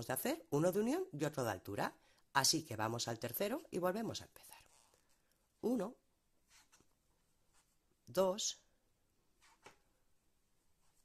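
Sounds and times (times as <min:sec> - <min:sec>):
faint yarn rustles: 0:04.2 - 0:08.1, 0:09.2 - 0:11.0.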